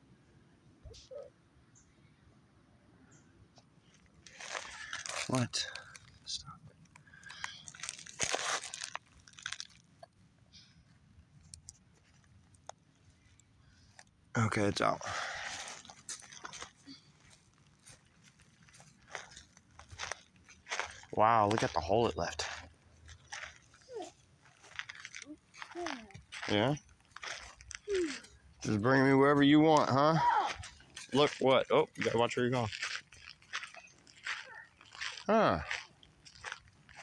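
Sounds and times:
pine needles and twigs rustling: 3.8s - 14.2s, 15.2s - 37.0s
footsteps crunching through dry grass: 3.9s - 6.4s, 7.0s - 9.8s, 15.2s - 37.0s.

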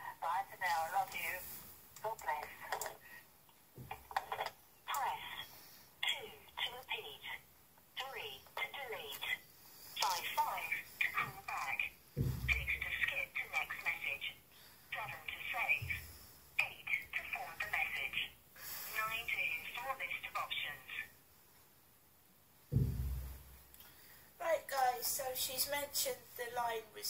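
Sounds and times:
voice through phone loudspeaker: 0.0s - 3.0s, 8.0s - 9.4s, 10.0s - 18.4s, 19.0s - 21.1s
dull low thumps: 12.2s - 12.8s, 22.7s - 23.6s.

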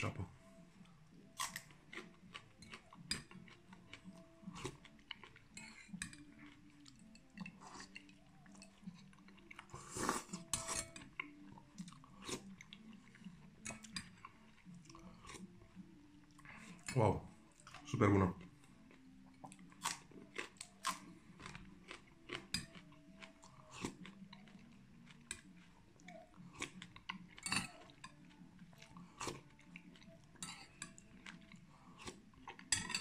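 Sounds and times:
loud slurp of soup: 9.8s - 10.4s.

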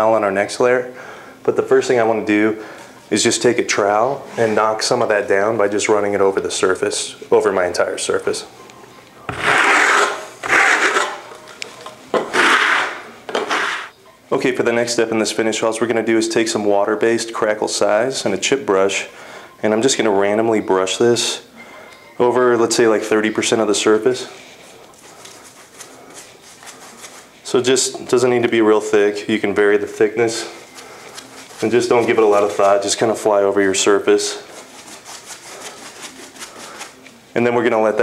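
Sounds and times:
brush scrubbing rough wall: 9.3s - 11.2s, 34.4s - 37.0s
trowel scraping wall: 9.3s - 11.3s, 12.2s - 13.9s.

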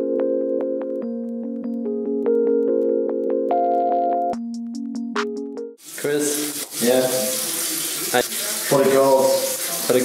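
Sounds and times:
tap running into washbasin: 5.8s - 10.0s.

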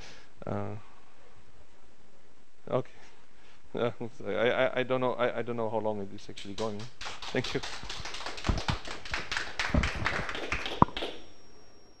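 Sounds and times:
audience applauding: 6.6s - 11.2s.

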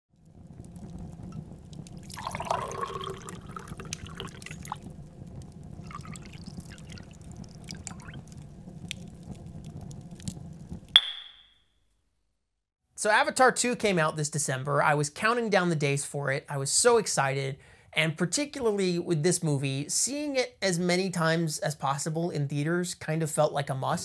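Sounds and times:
low steady rumble: 0.2s - 11.0s
water trickling and dripping: 0.3s - 10.4s
falling gurgle: 1.6s - 9.4s.

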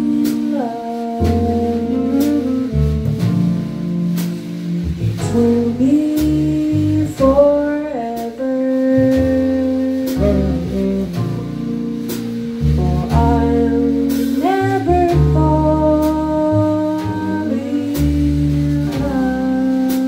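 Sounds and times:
double bass: 0.0s - 20.0s
drum kit: 0.0s - 20.0s
woman singing jazz ballad: 0.0s - 20.0s.

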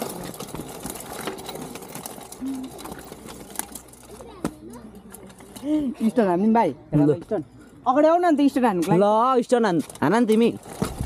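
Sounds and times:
bicycle clicking and rattling: 0.0s - 6.2s, 8.9s - 11.0s
bicycle rolling over stone: 0.0s - 6.2s, 8.9s - 11.0s.

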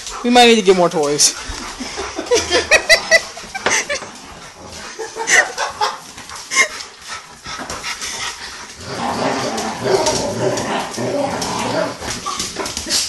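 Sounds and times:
dog play-growling: 1.4s - 13.0s.

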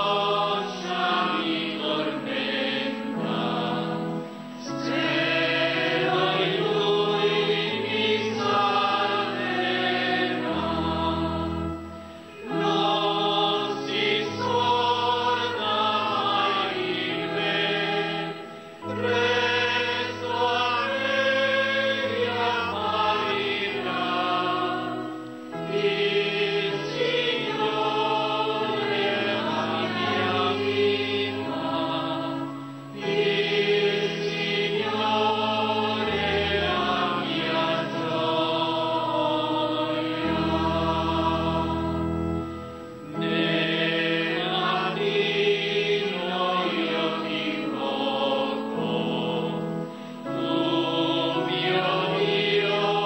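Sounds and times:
choir singing a hymn: 0.0s - 53.0s.

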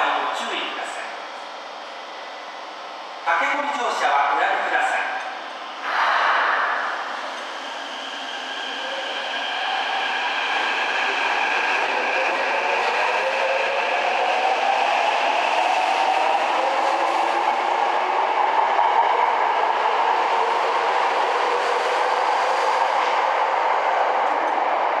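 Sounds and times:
train wheel and rail noise: 0.0s - 25.0s.

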